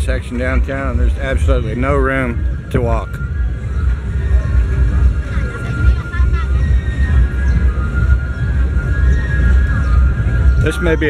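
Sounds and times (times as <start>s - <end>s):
crowd chatter: 0.0s - 11.0s
loud bass-heavy music: 0.0s - 11.0s.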